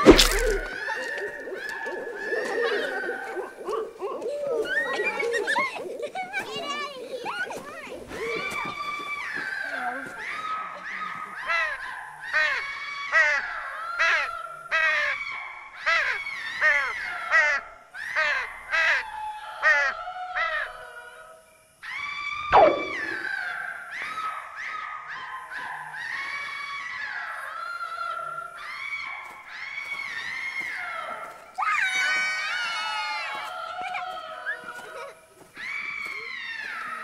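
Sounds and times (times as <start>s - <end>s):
sharp falling swoop: 0.0s - 0.8s, 22.5s - 23.3s.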